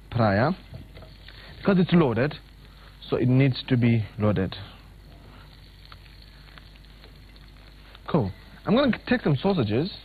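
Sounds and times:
potatoes sizzling in oil: 5.0 - 9.5.

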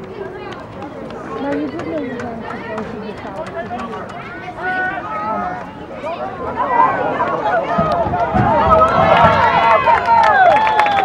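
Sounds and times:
spectators talking and calling: 0.0 - 11.0.

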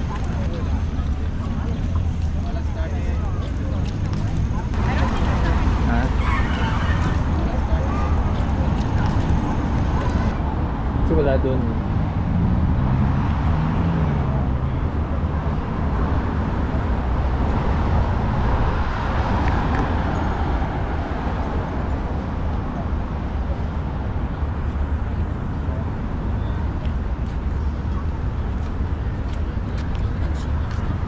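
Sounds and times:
road traffic rumbling: 0.0 - 31.0.

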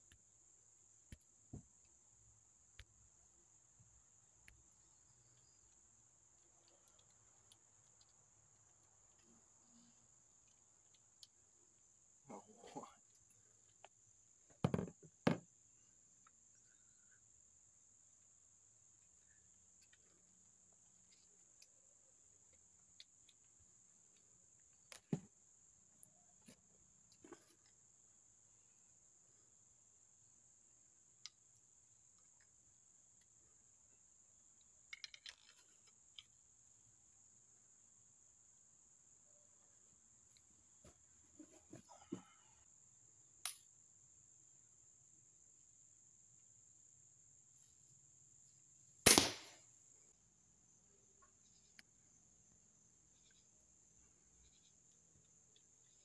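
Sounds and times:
insects droning: 0.0 - 56.0
crossbow clicks and knocks: 34.9 - 36.4.

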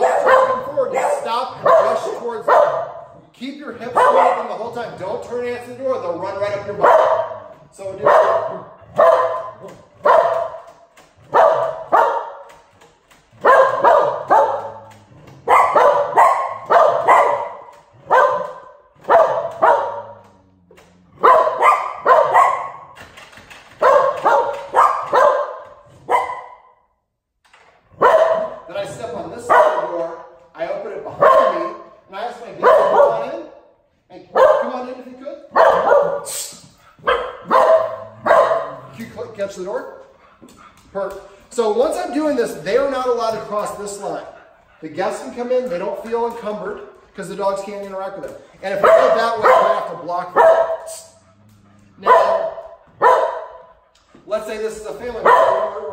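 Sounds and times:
dogs barking loudly: 0.0 - 26.8, 27.9 - 55.9.

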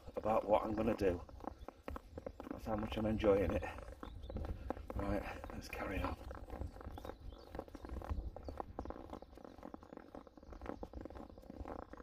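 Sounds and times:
footsteps on snow: 0.0 - 12.0.

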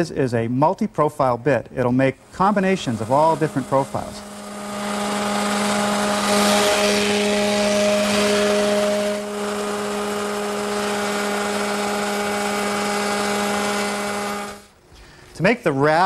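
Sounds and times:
router cutting wood: 2.2 - 14.8.

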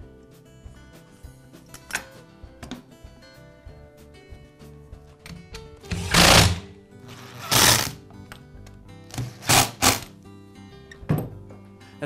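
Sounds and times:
background music: 0.0 - 12.0
mechanical rasping bursts: 5.9 - 8.0.

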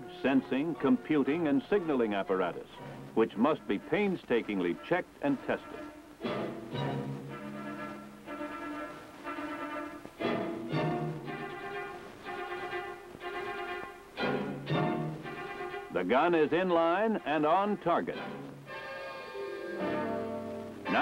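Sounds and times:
orchestral string music: 0.0 - 21.0.

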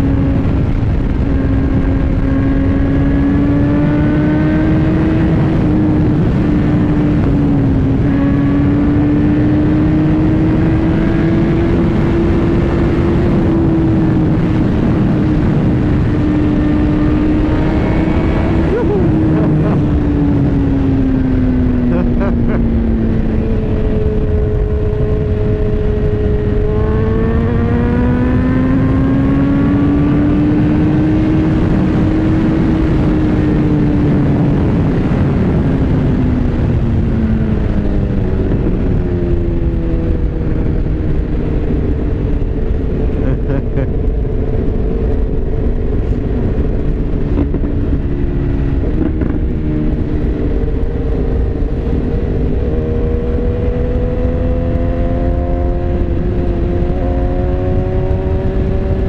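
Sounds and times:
motorcycle engine running: 0.0 - 59.0
wind noise: 0.0 - 59.0.

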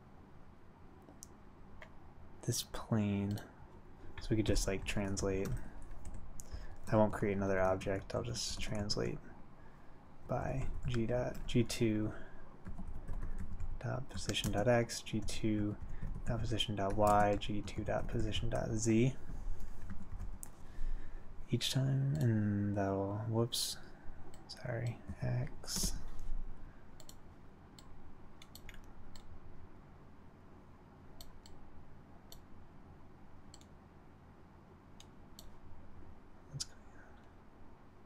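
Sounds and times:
low steady hum: 0.0 - 38.0
computer keyboard typing: 4.5 - 7.0, 10.5 - 11.7, 12.6 - 18.7
keyboard and mouse clicks: 27.0 - 27.2, 27.8 - 29.3.

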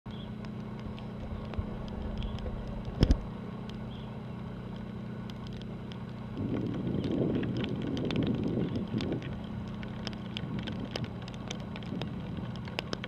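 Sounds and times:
ship engines humming: 0.1 - 6.4.

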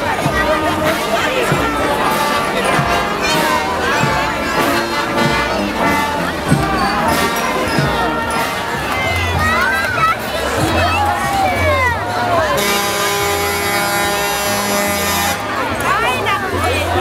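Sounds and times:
brass band music: 0.0 - 17.0
crowd chattering: 0.0 - 17.0.

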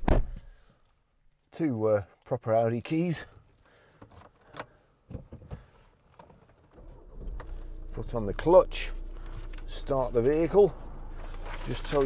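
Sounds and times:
car keys rattling: 6.0 - 12.0
low steady rumble: 6.8 - 12.0.

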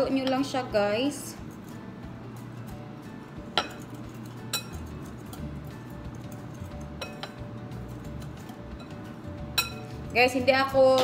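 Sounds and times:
whisk stirring in glass bowl: 3.6 - 8.9
whisk wires clinking on glass: 4.5 - 4.8, 8.8 - 9.9.

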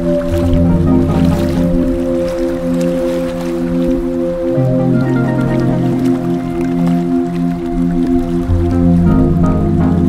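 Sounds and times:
ambient held chord: 0.0 - 10.0
deep bass note: 8.5 - 10.0.

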